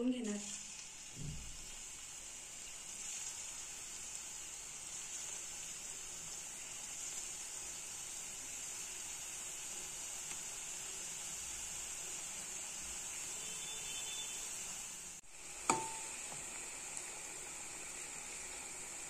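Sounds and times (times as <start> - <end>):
dough sizzling in hot oil: 0.0 - 19.0
sharp knock with ring: 15.7 - 16.1.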